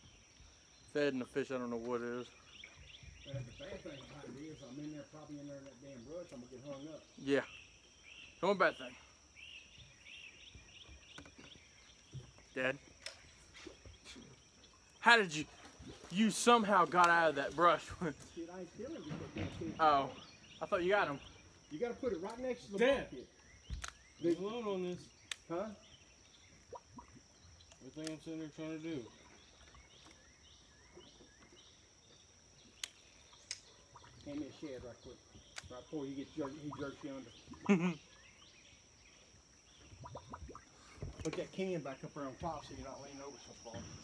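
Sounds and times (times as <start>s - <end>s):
songbird chirping: 0.0s - 44.0s
sharp clicks: 23.7s - 24.5s, 25.2s - 25.5s
high insect drone: 41.0s - 44.0s.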